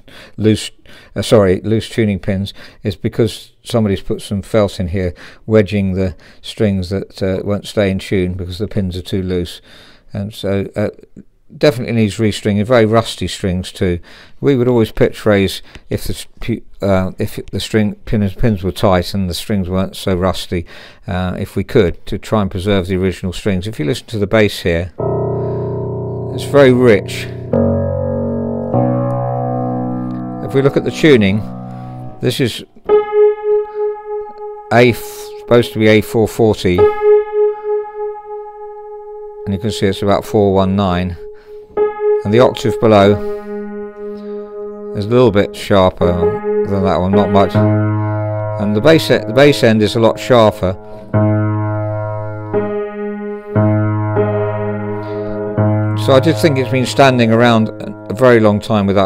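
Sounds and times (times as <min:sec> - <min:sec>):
piano bass notes ringing: 0:24.9 - 0:59.0.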